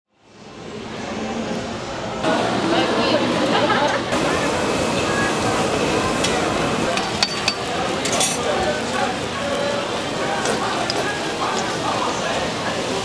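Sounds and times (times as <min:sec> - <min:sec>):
crowd chatter: 0:00.2 - 0:13.0
oil sizzling on a griddle: 0:04.2 - 0:13.0.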